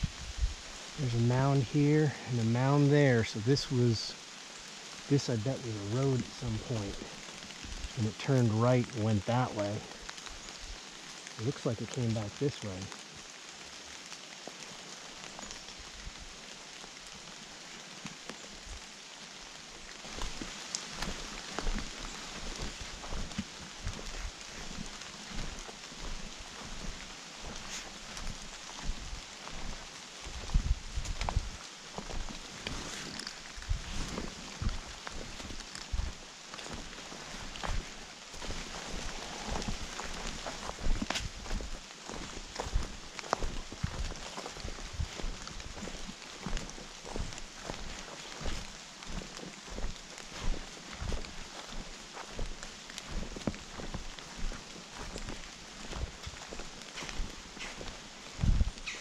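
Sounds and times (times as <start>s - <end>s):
footsteps through wet leaves: 0.0s - 59.0s
outdoor hiss: 0.0s - 59.0s.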